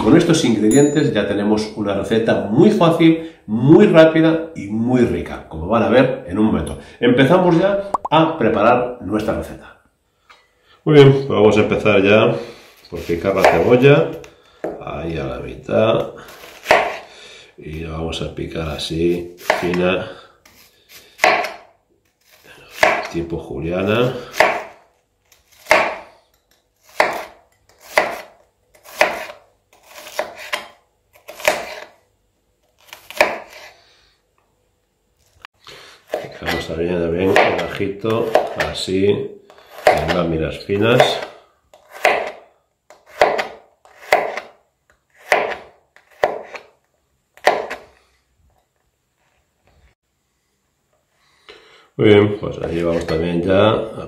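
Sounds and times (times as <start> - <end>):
knife slicing onion on cutting board: 13.0 - 14.3, 16.3 - 17.1, 19.4 - 19.8, 20.4 - 23.2, 24.1 - 32.0, 32.7 - 33.8, 36.1 - 38.8, 39.5 - 40.3, 40.9 - 46.8, 47.4 - 48.0
knife slicing on cutting board: 26.9 - 31.9, 41.0 - 44.5, 45.2 - 46.7.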